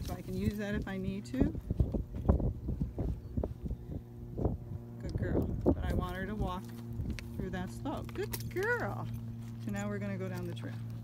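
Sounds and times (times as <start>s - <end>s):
footsteps on grassy ground: 0.0s - 4.6s, 5.4s - 11.0s
wind rumbling on microphone: 0.0s - 9.4s.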